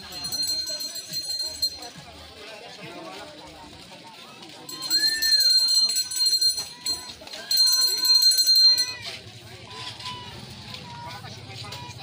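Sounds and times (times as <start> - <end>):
small bells jingling: 0.0 - 2.3, 4.5 - 9.2
faint voices: 0.0 - 12.0.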